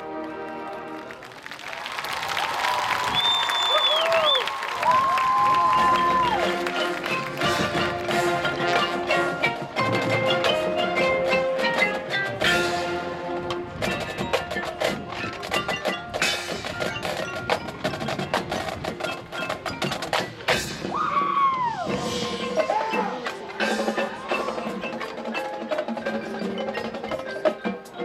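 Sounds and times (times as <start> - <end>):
marching band percussion: 3.0 - 28.0.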